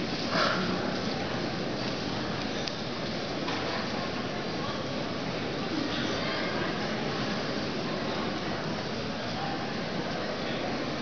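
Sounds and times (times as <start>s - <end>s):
indoor hall background noise: 0.0s - 11.0s.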